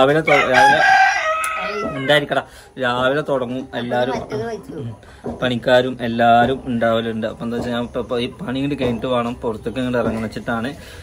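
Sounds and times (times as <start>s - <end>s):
rooster crowing: 0.2s - 2.3s.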